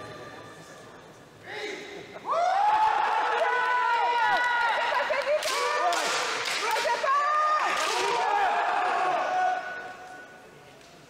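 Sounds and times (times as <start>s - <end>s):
people shouting kiai: 5.4s - 10.1s.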